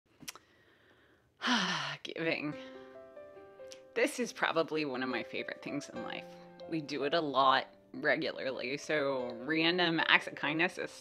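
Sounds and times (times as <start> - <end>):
woman sighing: 1.4 - 3.0.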